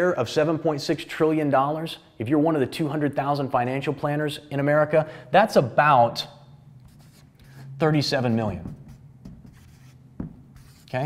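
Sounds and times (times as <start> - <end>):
marker pen writing on board: 6.8 - 11.0.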